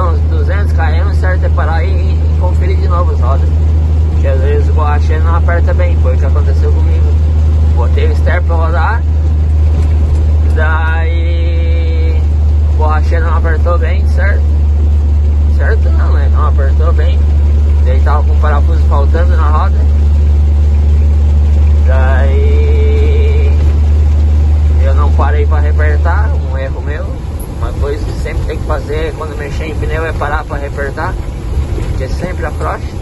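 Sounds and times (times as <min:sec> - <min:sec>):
person talking: 0:00.0 - 0:03.6, 0:04.2 - 0:09.1, 0:10.4 - 0:14.5, 0:15.5 - 0:20.1, 0:21.7 - 0:23.9, 0:24.7 - 0:31.2, 0:31.9 - 0:33.0
truck engine droning: 0:00.0 - 0:33.0.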